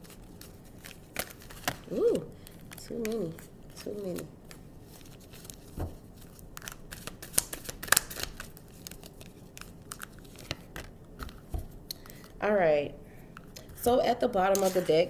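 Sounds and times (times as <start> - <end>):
cards being shuffled: 2.7 - 12.1, 14.5 - 15.0.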